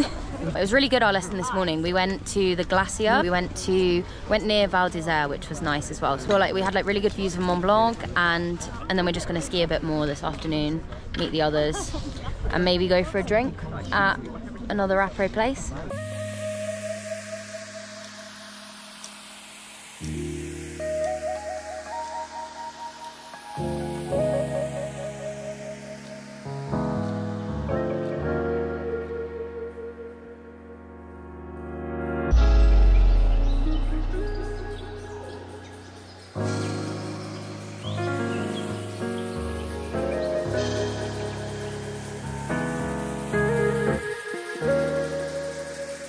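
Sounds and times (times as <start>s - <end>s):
faint background music: 0.0s - 30.7s
outdoor hiss: 15.9s - 27.7s, 33.8s - 46.0s
sustained music chords: 15.9s - 46.0s
deep bass note: 31.8s - 37.0s.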